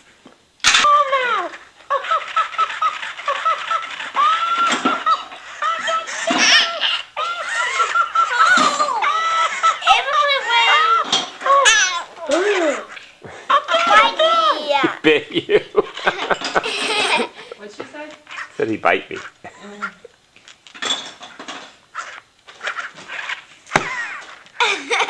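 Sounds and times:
toy doll laughing: 0:00.8 - 0:17.6, 0:23.8 - 0:25.0
toddlers giggling: 0:00.9 - 0:17.7, 0:19.1 - 0:20.1, 0:23.8 - 0:25.0.

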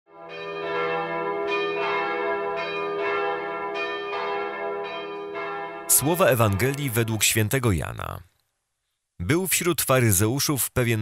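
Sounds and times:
bells ringing: 0:00.1 - 0:07.5.

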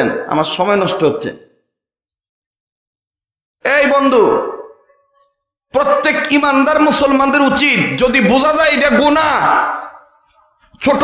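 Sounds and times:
man preaching into microphones: 0:00.0 - 0:01.6, 0:03.6 - 0:04.7, 0:05.7 - 0:10.1, 0:10.7 - 0:11.0.

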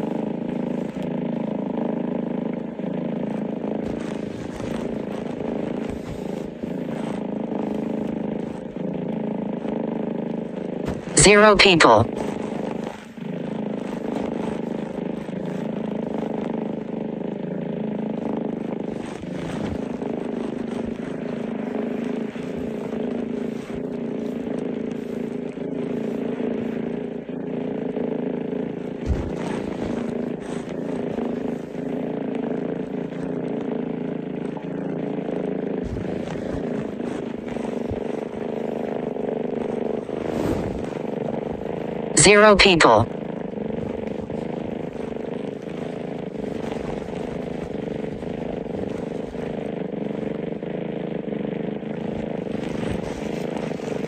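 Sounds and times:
low humming drone: 0:12.0 - 0:42.2.

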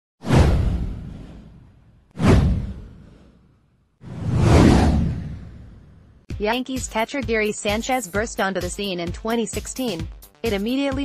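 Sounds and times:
whoosh with deep low rumble: 0:00.2 - 0:06.3.

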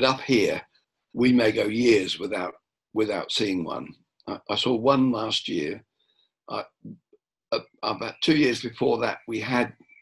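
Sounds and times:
man speaking: 0:00.0 - 0:00.6, 0:01.2 - 0:05.8, 0:06.5 - 0:07.0, 0:07.6 - 0:09.7.

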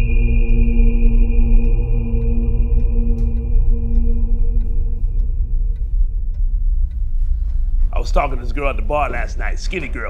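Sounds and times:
clock-like ticking: 0:00.0 - 0:10.0
deep low rumble: 0:00.0 - 0:10.0
held ambient tones: 0:00.0 - 0:10.0.

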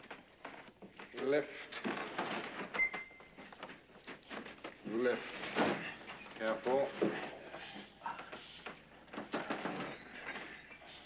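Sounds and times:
creaking and scraping of hoisted load: 0:00.0 - 0:11.0.

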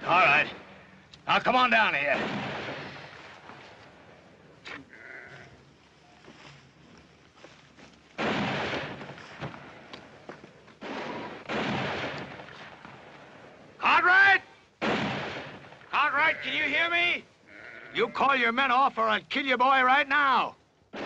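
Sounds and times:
sheep bleating: 0:04.7 - 0:05.6, 0:16.0 - 0:16.7, 0:17.4 - 0:18.3.

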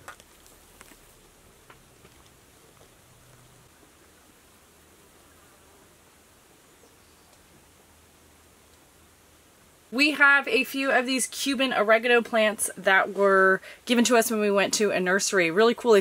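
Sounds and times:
leaves rustling: 0:00.0 - 0:10.1
low steady hiss: 0:00.0 - 0:16.0.

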